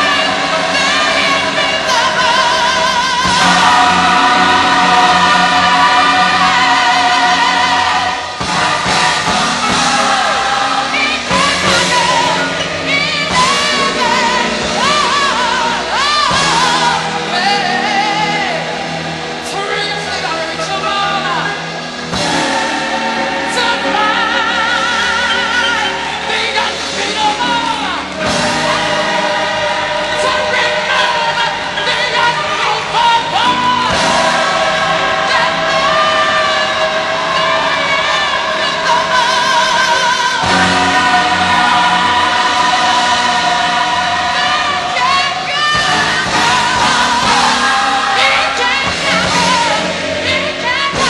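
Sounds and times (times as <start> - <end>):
gospel choir singing: 0.0 - 51.0
musical accompaniment: 0.0 - 51.0.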